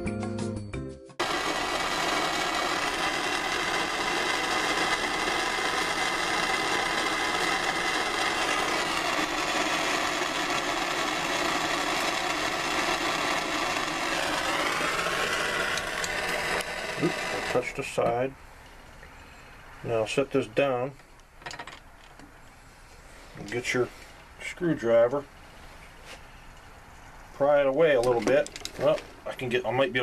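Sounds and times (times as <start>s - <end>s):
music: 0.0s - 1.2s
gas torch hissing: 1.2s - 18.1s.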